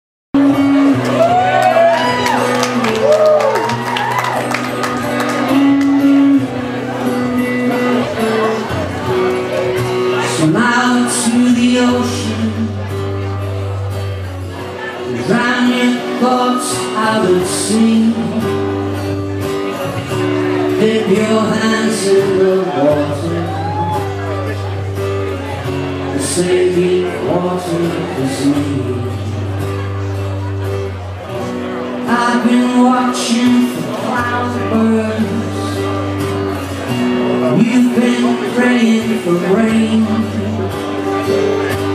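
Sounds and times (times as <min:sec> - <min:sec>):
cello keyboard and guitar playing: 0:00.4 - 0:41.9
audience whooping and shouting: 0:01.0 - 0:05.0, 0:23.4 - 0:24.3.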